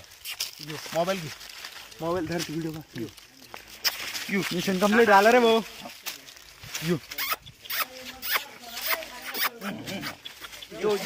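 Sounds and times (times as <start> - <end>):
dry leaves crackling and rustling: 0.0 - 11.0.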